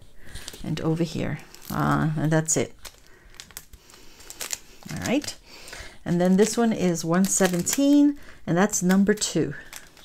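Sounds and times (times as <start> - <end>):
plastic bag crinkling: 0.2 - 10.0.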